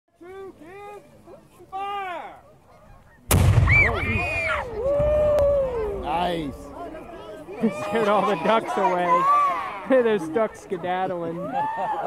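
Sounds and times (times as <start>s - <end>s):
cannon boom: 3.3s - 6.8s.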